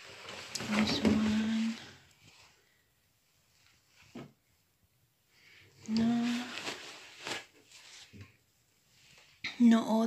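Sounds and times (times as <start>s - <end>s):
cloth rustling: 0.0s - 2.8s, 5.9s - 9.4s.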